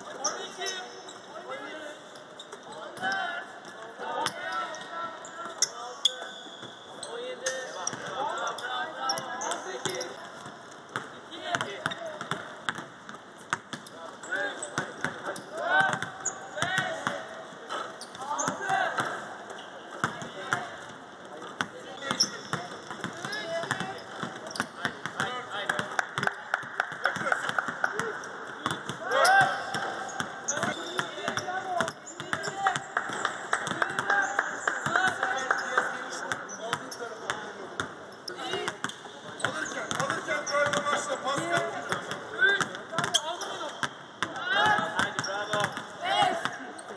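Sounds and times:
basketballs bouncing on court: 7.8s - 8.2s, 9.1s - 19.2s, 19.9s - 46.9s.

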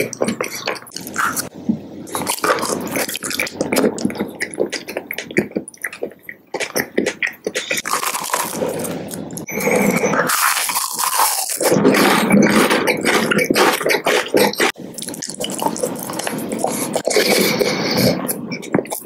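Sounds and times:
lips smacking and sucking: 10.3s - 19.0s.

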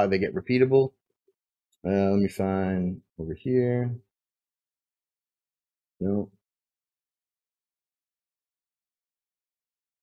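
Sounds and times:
person speaking: 1.8s - 4.1s.

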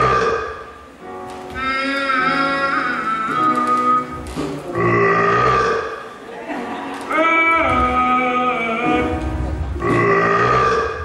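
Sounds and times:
person burping: 4.8s - 6.0s, 9.8s - 11.0s.

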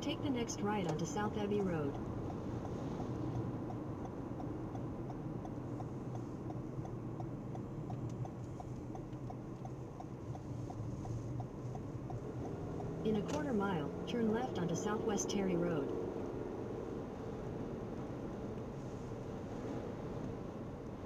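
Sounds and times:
turn signal ticking: 0.0s - 15.9s
engine and road noise: 0.0s - 21.0s.

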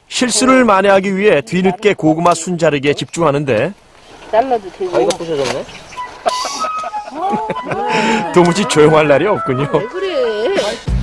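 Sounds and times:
women laughing: 6.1s - 10.9s.

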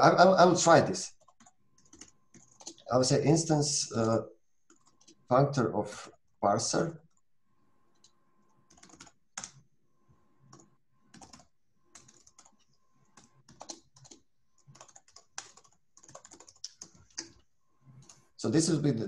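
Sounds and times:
keyboard typing: 1.1s - 3.1s, 3.9s - 5.3s, 7.9s - 9.7s, 10.4s - 18.3s.

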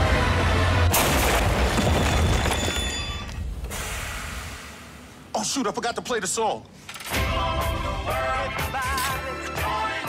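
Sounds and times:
rumble of breaking debris: 0.9s - 3.6s.

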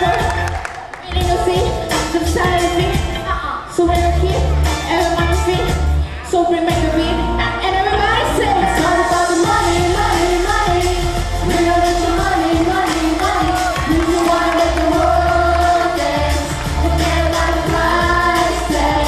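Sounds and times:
pop music with steady beat: 0.0s - 19.0s
young people singing: 8.0s - 19.0s.

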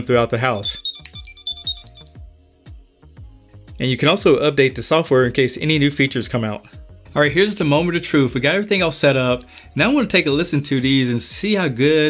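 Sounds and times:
short high electronic beeps: 0.5s - 2.3s.

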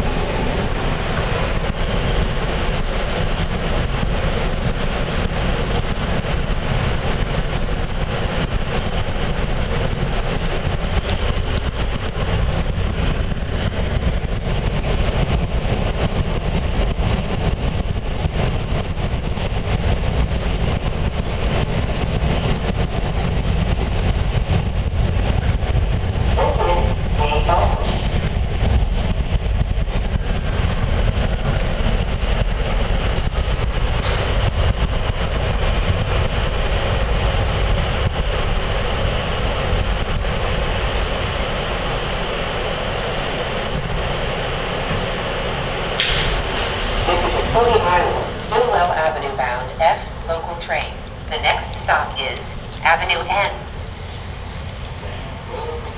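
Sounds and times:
subway car wheels rumbling and rattling: 0.0s - 55.9s.

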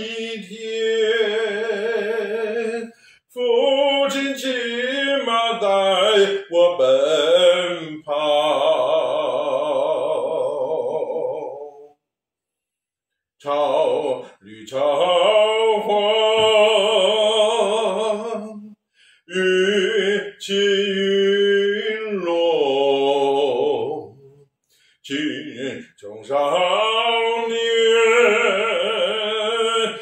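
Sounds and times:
man singing a long held note: 0.0s - 11.9s, 13.4s - 18.7s, 19.3s - 24.4s, 25.1s - 30.0s
breath: 2.9s - 3.3s, 18.8s - 19.3s, 24.6s - 25.0s.

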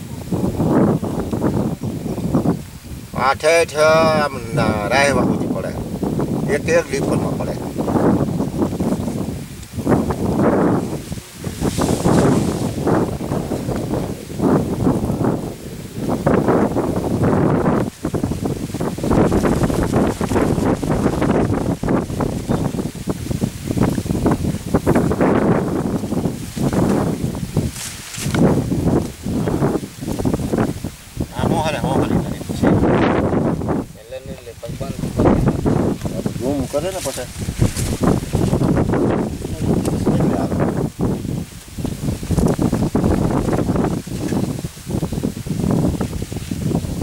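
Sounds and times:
leaves rustling: 0.0s - 47.0s
wind buffeting microphone: 0.0s - 47.0s.

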